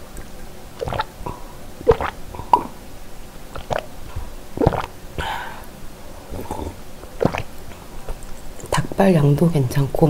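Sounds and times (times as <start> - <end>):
person swallowing water: 0.2 - 2.8, 3.5 - 8.4.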